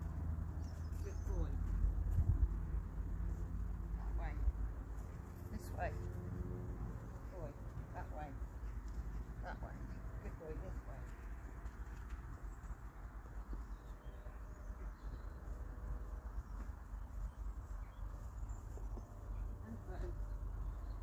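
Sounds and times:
hooves on grass: 0.0s - 21.0s
low rumble: 0.0s - 21.0s.

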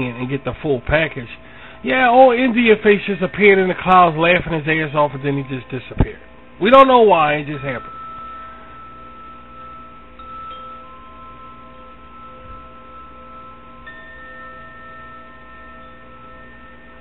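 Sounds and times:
long-ringing chime tones: 0.0s - 17.0s.

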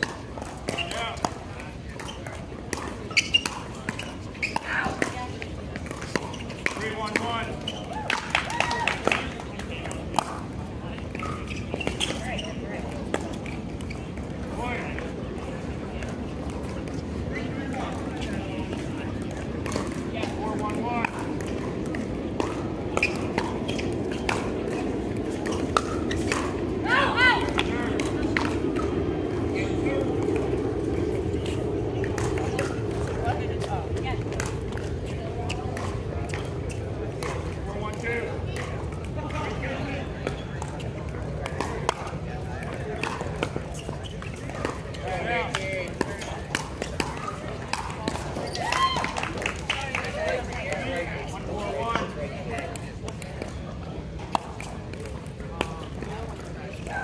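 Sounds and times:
low background noise: 0.0s - 57.0s
paddles striking balls: 0.0s - 57.0s
voices talking: 0.0s - 57.0s.

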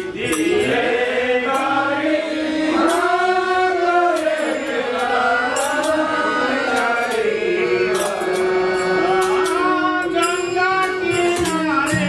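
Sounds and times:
bright percussion strikes: 0.0s - 12.0s
group singing: 0.0s - 12.0s
harmonium: 0.0s - 12.0s
hand drums: 5.0s - 12.0s.

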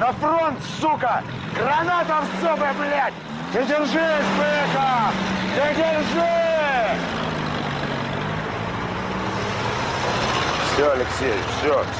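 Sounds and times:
men's raised voices: 0.0s - 9.0s
car engine running: 0.0s - 11.9s.

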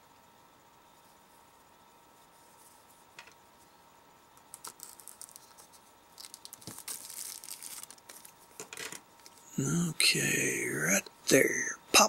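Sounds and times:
plastic wrap crinkling and tearing: 4.5s - 5.6s, 6.2s - 8.4s.

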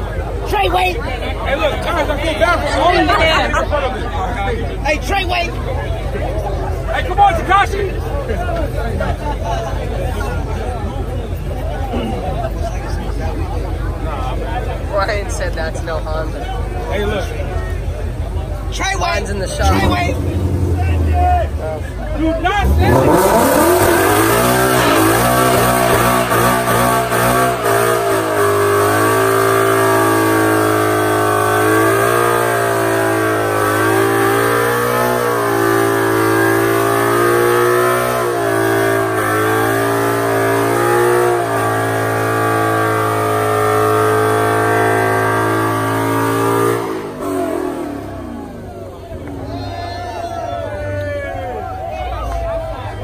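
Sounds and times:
car engine revving high: 18.8s - 49.7s.

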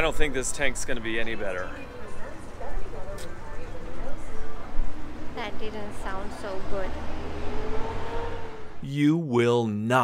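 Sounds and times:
man's voice: 8.8s - 10.0s.

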